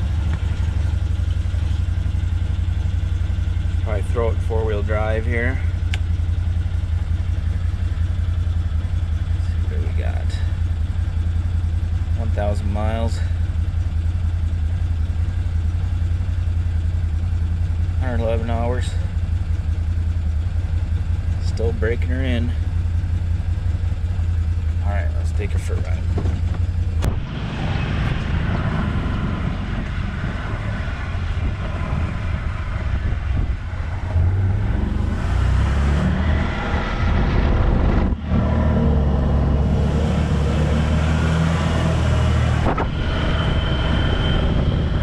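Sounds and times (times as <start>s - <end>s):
engine idling: 0.0s - 45.0s
high whine: 0.0s - 45.0s.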